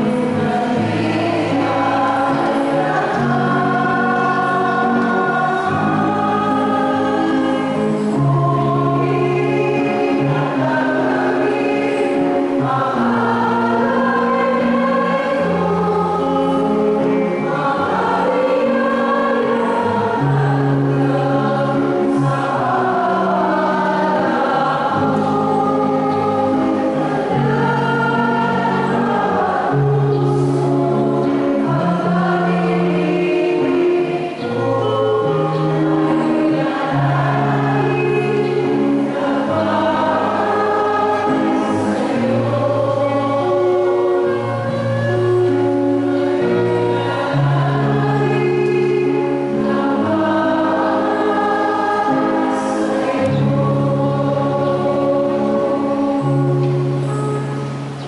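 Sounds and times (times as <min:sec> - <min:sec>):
choir singing a slow hymn: 0:00.0 - 0:58.0.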